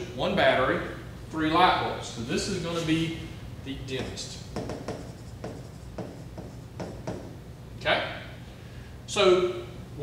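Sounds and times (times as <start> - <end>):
stylus scratching on screen: 4.0 - 7.2.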